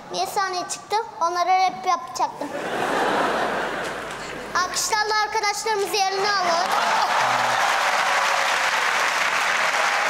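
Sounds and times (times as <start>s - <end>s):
audience applauding: 6.2s - 10.0s.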